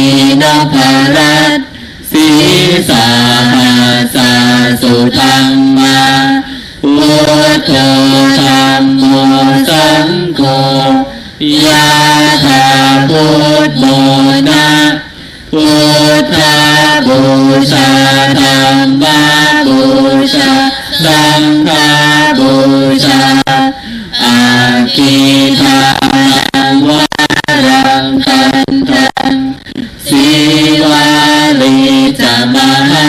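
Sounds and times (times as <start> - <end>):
men chanting: 0.0 - 33.0.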